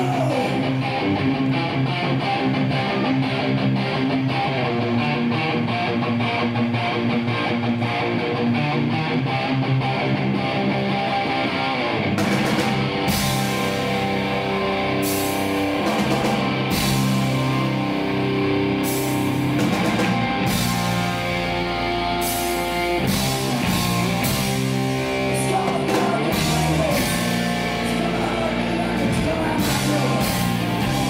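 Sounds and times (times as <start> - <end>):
bass guitar: 0.0 - 31.0
electric guitar riff: 0.0 - 31.0
drums and cymbals: 12.2 - 18.2, 18.8 - 31.0.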